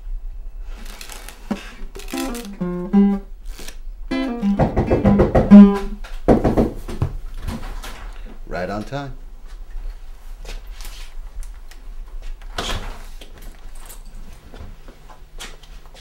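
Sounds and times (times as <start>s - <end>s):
acoustic guitar strumming: 2.1s - 3.3s, 4.1s - 6.0s.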